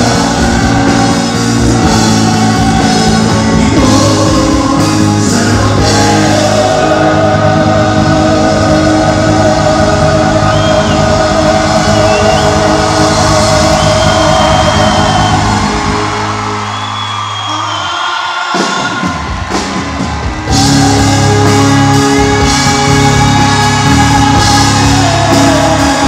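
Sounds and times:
crowd shouting and cheering: 0.0 - 26.0
live band playing slow song: 0.0 - 26.0.

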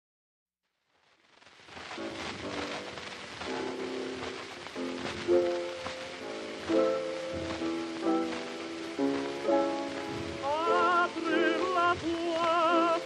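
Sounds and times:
record hiss and crackle: 0.6 - 13.0.

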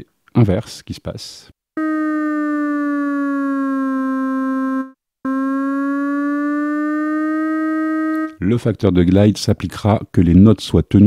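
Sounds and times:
synthesizer notes gliding in pitch: 1.8 - 8.4.

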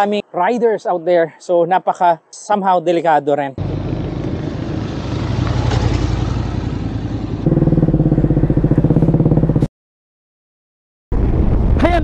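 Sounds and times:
close motorcycle engine pulsing: 3.6 - 9.7
motorcycles passing: 3.6 - 9.7.

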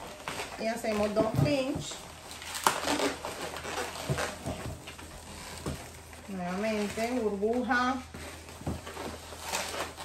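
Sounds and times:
balloon latex squeaking: 0.0 - 10.0.

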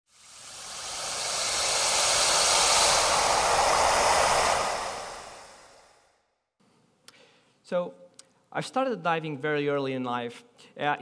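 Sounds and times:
rushing whoosh: 0.1 - 6.0.

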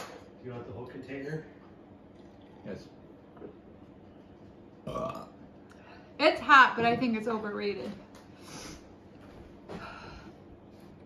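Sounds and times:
man burping loudly: 4.8 - 5.4.

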